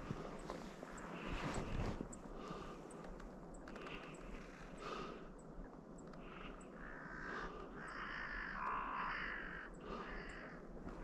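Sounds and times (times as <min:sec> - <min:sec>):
crows cawing: 0:06.2 - 0:10.7.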